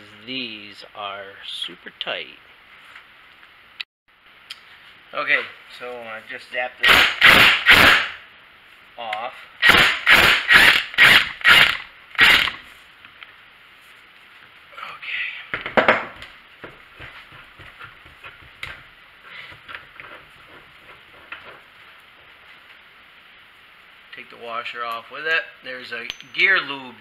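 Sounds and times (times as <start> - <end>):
impact wrench bursts: 6.8 - 8.2, 9.6 - 12.6
light clicks and clinks: 26.0 - 26.6.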